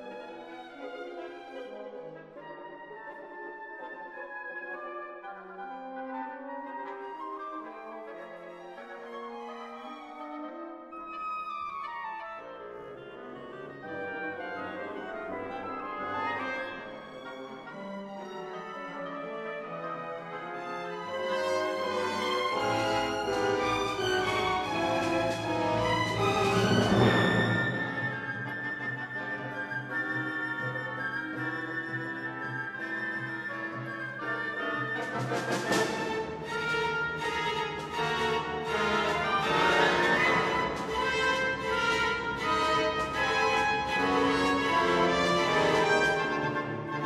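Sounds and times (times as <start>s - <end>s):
symphony orchestra playing: 0.0s - 47.0s.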